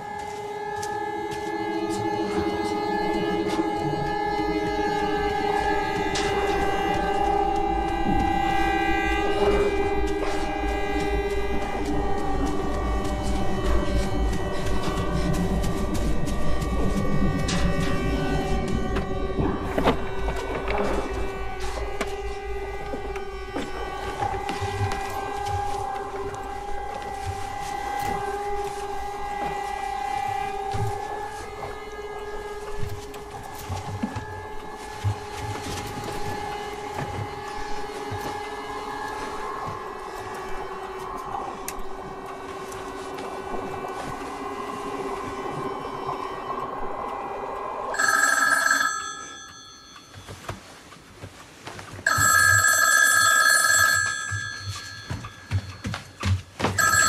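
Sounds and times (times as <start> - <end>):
low droning tones: 0.0 - 48.0
telephone ringing: 47.9 - 50.5, 52.0 - 57.0.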